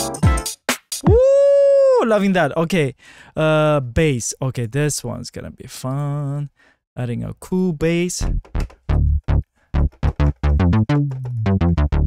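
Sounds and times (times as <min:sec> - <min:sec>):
electronic garage beat: 0:08.2 - 0:12.0
synth bass note: 0:08.3 - 0:12.0.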